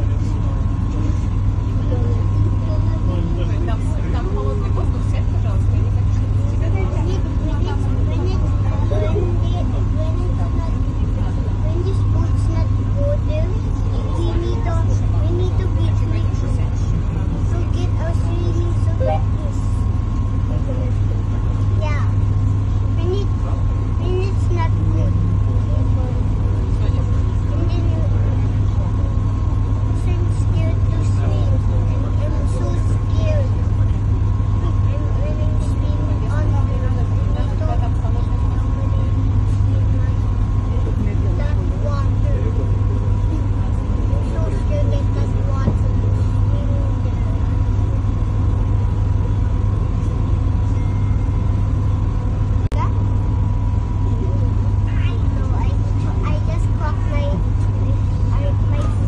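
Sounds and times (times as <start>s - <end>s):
boat engine droning: 0.0s - 59.0s
indistinct voices talking: 0.0s - 59.0s.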